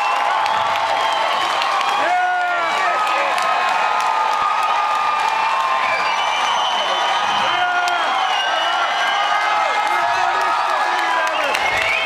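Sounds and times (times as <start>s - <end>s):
concert crowd cheering: 0.0s - 12.0s.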